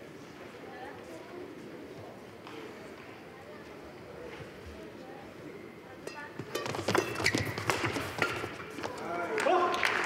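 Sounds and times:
shoes squeaking on floor: 6.4s - 8.7s.

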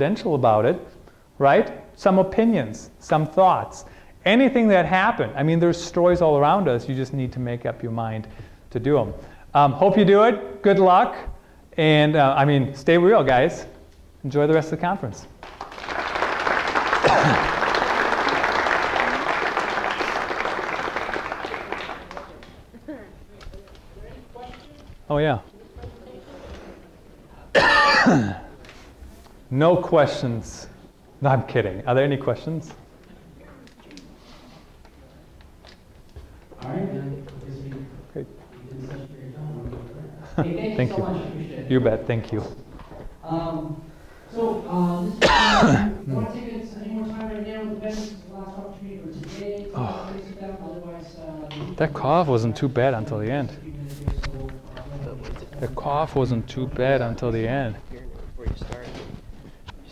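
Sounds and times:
audience applauding: 15.4s - 22.8s
man coughing into microphone: 17.0s - 17.5s, 27.5s - 28.5s, 45.2s - 46.0s.

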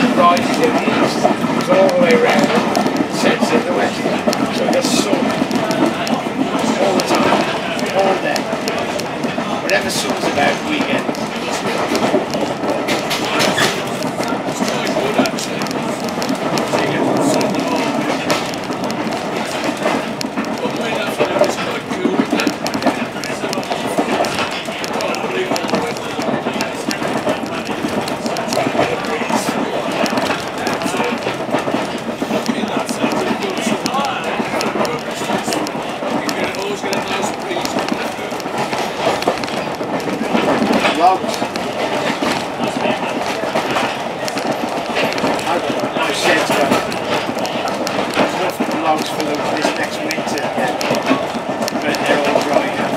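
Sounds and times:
train carriage rumble: 0.0s - 52.9s
wheels clicking over rail joints: 0.0s - 52.9s.

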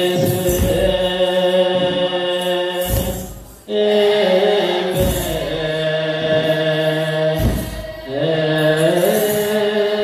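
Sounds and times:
youths singing liturgical chant: 0.0s - 10.0s.

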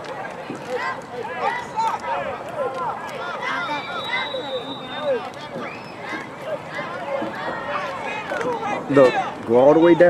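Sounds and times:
children and adults talking at once: 0.0s - 10.0s.

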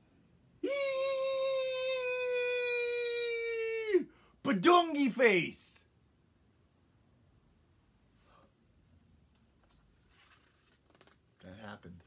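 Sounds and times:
man vocalizing long high ooo: 0.6s - 4.0s.

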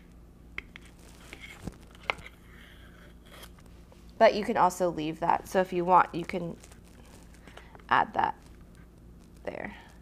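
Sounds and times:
tape rustling: 0.8s - 2.4s, 6.0s - 10.0s.

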